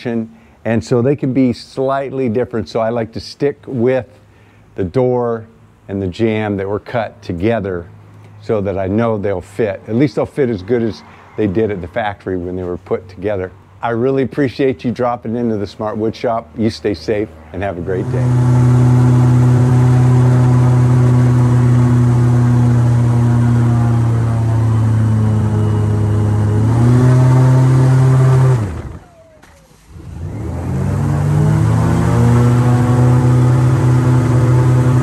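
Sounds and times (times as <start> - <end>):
airboat engine and propeller drone: 18.0 - 35.0.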